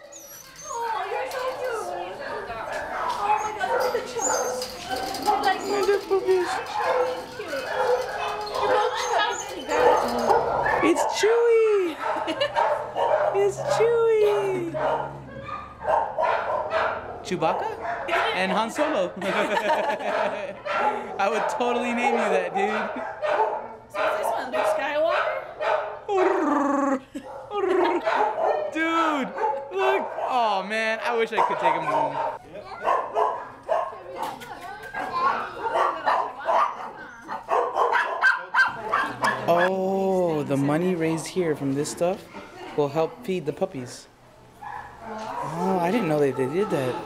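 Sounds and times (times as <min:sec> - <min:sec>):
dogs barking: 0:00.6 - 0:26.4, 0:27.0 - 0:39.8, 0:44.6 - 0:47.0.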